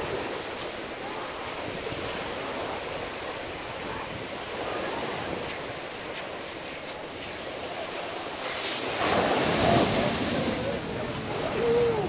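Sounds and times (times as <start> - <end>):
small waves breaking on shore: 0.0 - 12.0
wind on microphone: 0.0 - 12.0.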